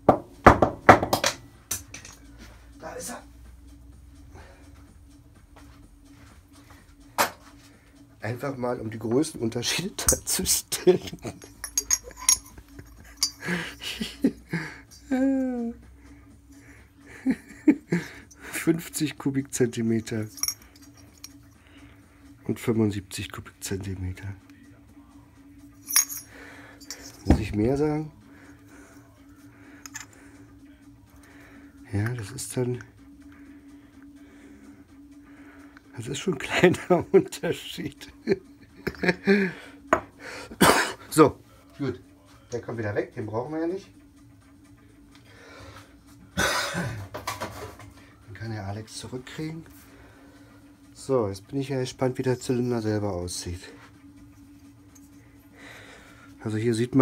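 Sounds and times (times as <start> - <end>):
part knocking on workbench: 0.0 - 1.4
faint steady hum: 0.0 - 57.0
metal parts handling: 11.2 - 13.4, 20.1 - 21.4, 25.8 - 27.5, 29.8 - 30.2.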